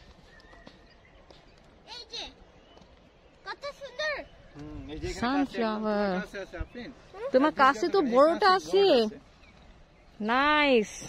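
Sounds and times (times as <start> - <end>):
footsteps on dirt path: 0.0 - 4.9
faint outdoor hush: 0.0 - 11.0.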